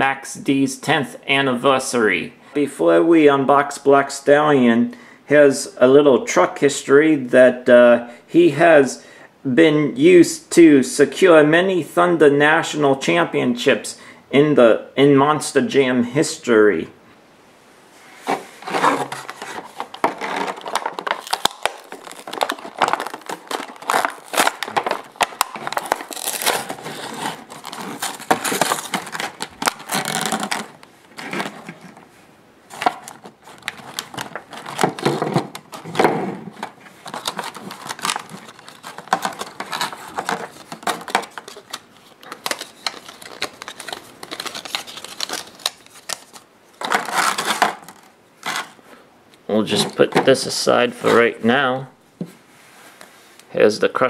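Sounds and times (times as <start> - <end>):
cardboard tearing: 18.3 - 32.0, 32.7 - 48.8
plastic packaging crinkling: 18.6 - 32.1, 32.7 - 48.8.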